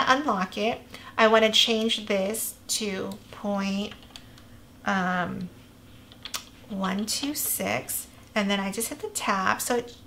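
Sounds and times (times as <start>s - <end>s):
computer keyboard keystrokes: 3.8s - 4.4s, 6.1s - 7.6s.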